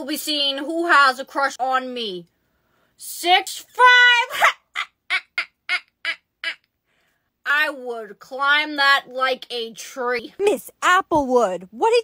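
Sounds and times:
woman laughing: 4.3s - 6.6s.

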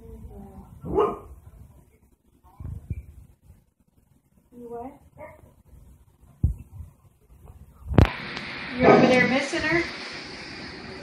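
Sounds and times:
dog barking: 0.8s - 1.4s.

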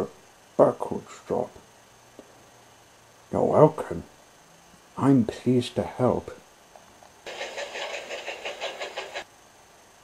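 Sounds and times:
toy train clattering on track: 7.3s - 9.3s.

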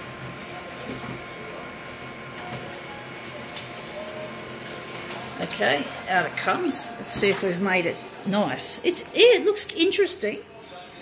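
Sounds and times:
laser copier whirring: 0.0s - 11.0s.

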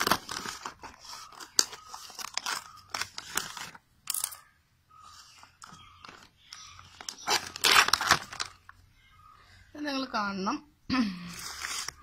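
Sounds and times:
scissors cutting plastic film: 0.0s - 3.8s, 7.0s - 8.5s
plastic crackling and crinkling: 0.0s - 4.4s, 5.4s - 8.8s, 11.3s - 12.0s.

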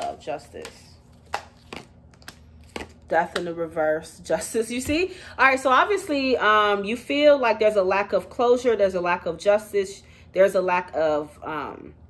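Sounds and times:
cards snapping and tapping: 0.6s - 3.5s.

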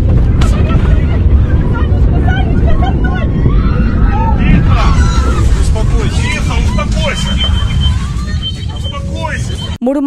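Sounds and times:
loud low cabin rumble: 0.0s - 9.9s
passengers crying out: 0.3s - 9.8s
thin high tone: 5.0s - 9.8s.

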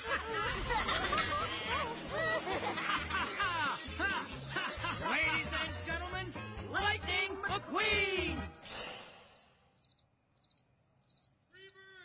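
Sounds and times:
cricket chirps: 9.8s - 11.8s.

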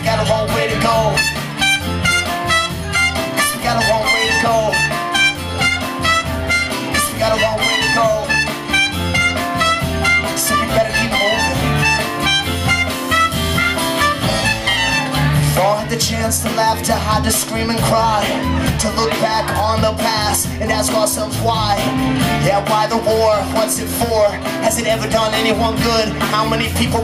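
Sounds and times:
acoustic guitar: 0.0s - 27.0s
bass: 0.0s - 27.0s
drums keeping steady beat: 0.0s - 27.0s
trumpet: 0.7s - 15.4s
fiddle: 1.2s - 15.7s.

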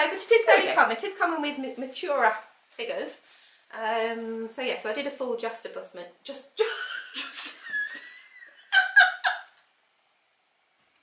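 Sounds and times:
woman laughing: 6.6s - 9.6s.

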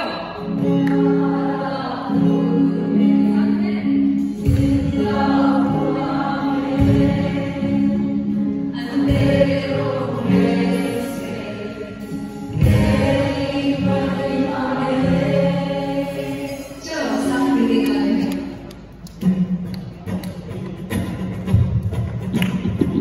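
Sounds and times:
congregation singing: 0.0s - 18.6s
worship band with electric guitar: 0.0s - 23.0s.

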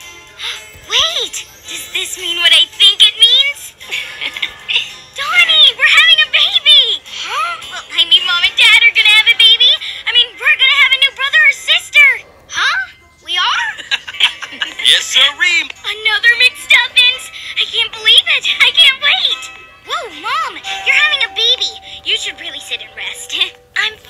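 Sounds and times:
music: 0.0s - 24.0s.

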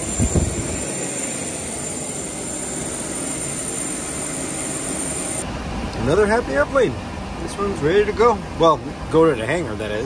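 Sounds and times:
jet turbine rushing: 0.0s - 9.1s
high turbine whine: 0.0s - 10.0s.

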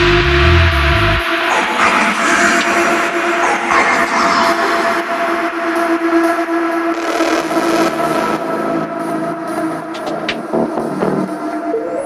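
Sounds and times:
droning synth tones: 0.0s - 12.0s.

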